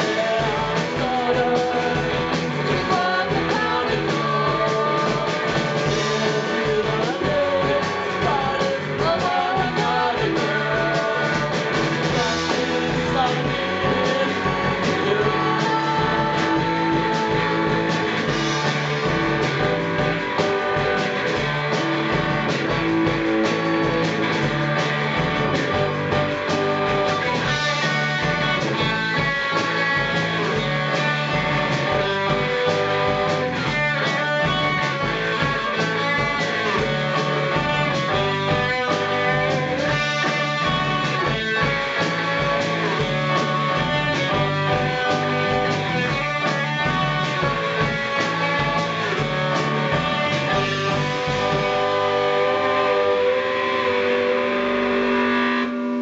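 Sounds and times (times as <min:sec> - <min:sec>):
drum kit: 0:00.0 - 0:56.0
electric guitar: 0:00.0 - 0:56.0.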